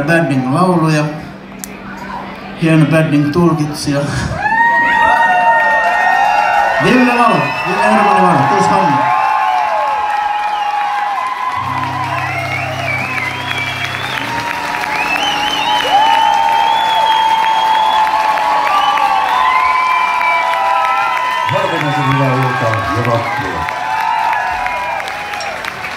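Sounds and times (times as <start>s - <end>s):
audience applauding: 4.5s - 25.9s
band holding low note: 11.6s - 17.3s
long wavering whistles: 11.6s - 22.4s.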